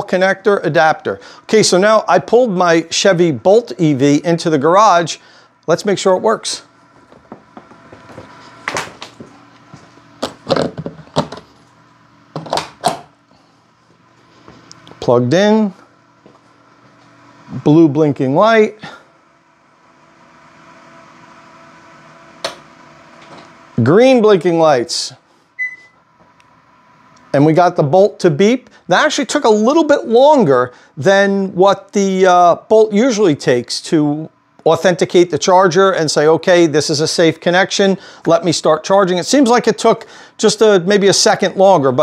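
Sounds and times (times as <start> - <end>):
charging plug knocking and clicking: 12.4 - 13.1
short car beep: 25.6 - 26.0.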